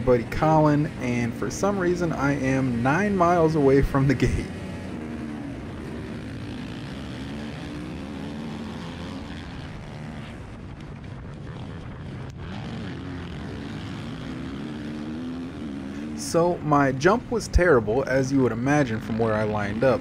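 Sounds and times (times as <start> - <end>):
dirt bike engine revving: 0.0 - 20.0
other dirt bikes running: 0.0 - 20.0.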